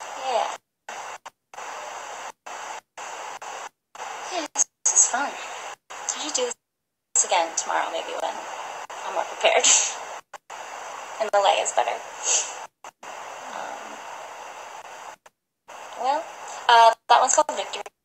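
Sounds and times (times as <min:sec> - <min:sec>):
steady hiss: 0:00.0 - 0:06.6, 0:07.2 - 0:17.8
woman talking: 0:00.2 - 0:00.6, 0:04.2 - 0:06.6, 0:07.2 - 0:10.1, 0:11.1 - 0:12.6, 0:13.5 - 0:14.0, 0:15.8 - 0:18.0.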